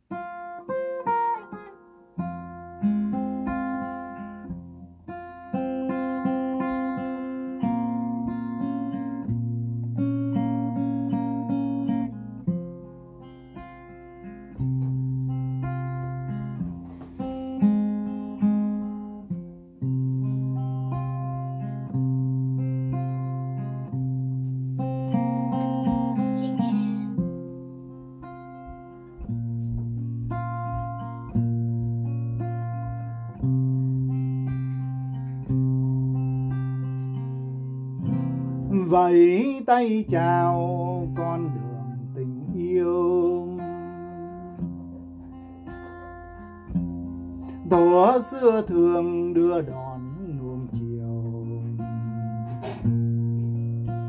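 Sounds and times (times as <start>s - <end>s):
acoustic guitar picked chords: 0.0s - 54.0s.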